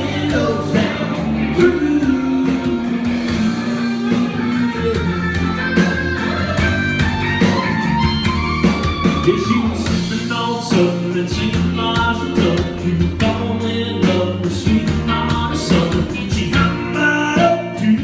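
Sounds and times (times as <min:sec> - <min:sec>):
person singing: 0:00.0 - 0:06.6, 0:08.9 - 0:18.0
drums: 0:00.0 - 0:18.0
electric guitar: 0:00.0 - 0:18.0
live country-rock band: 0:00.0 - 0:18.0.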